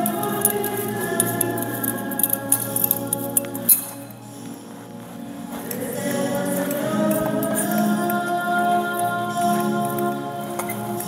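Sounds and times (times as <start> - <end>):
censer chains clinking: 0.0 - 4.2
hymn music: 0.0 - 11.0.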